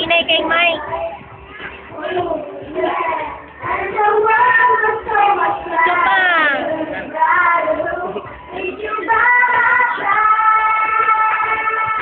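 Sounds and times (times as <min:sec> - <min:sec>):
child singing: 0:00.4 - 0:12.0.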